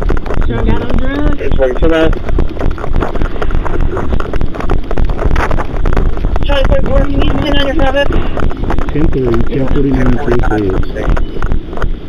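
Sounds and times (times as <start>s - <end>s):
rustles and knocks from walking: 0.0s - 12.0s
wind buffeting microphone: 0.0s - 12.0s
man's voice: 8.9s - 11.1s.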